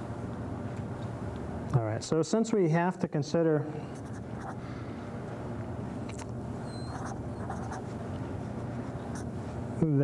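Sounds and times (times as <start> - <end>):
low background hum: 0.0 - 10.0
marker scratching on paper: 4.0 - 4.6, 6.8 - 8.0.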